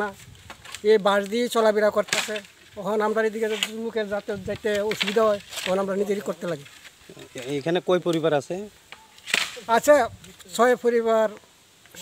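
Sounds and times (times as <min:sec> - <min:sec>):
man speaking: 0:00.8 - 0:08.8, 0:09.6 - 0:12.0.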